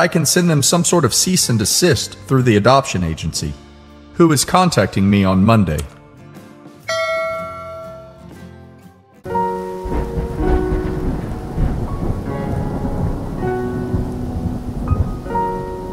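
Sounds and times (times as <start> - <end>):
held music chord: 6.8 - 8.6
steady rain: 9.3 - 15.9
low thunder rumbling: 9.4 - 15.9.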